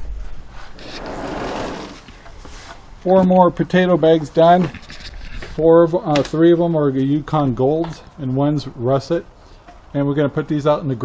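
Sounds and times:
sliding door scraping open: 0.7s - 2.7s.

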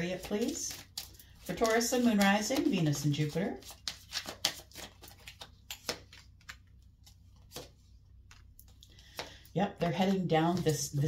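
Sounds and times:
cards being shuffled: 0.0s - 9.4s, 10.0s - 11.0s.

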